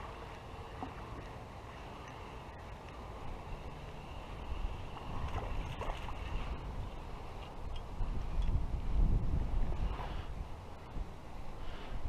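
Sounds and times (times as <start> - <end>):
wind buffeting microphone: 4.3 - 12.0.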